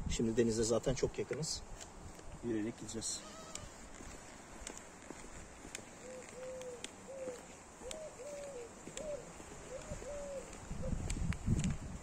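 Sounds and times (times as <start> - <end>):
dove cooing: 5.9 - 11.1.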